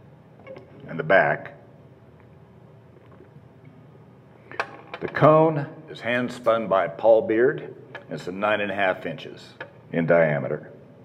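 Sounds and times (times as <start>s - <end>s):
low steady hum: 0.0s - 11.0s
guitar handling noise: 4.5s - 5.4s.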